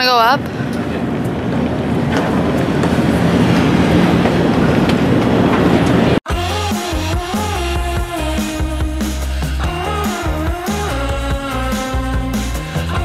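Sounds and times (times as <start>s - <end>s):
electronic music with a beat: 6.3s - 13.0s.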